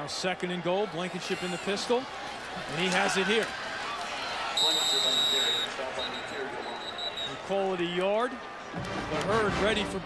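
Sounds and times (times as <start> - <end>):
referee's whistle: 4.5 - 7.5.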